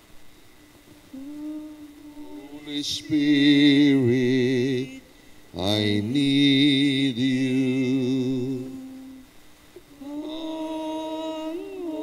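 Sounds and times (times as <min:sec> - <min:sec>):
person humming a held note: 0:01.1 - 0:05.1, 0:06.8 - 0:09.3, 0:09.9 - 0:12.0.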